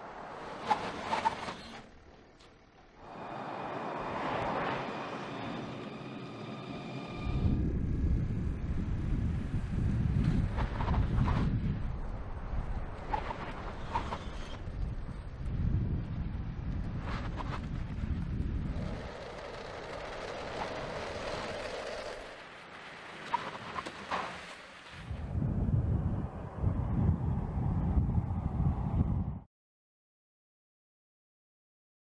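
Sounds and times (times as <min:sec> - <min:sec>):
car engine and tyre noise: 0:00.0 - 0:29.4
wind rumble on microphone: 0:07.0 - 0:22.4, 0:25.0 - 0:29.5.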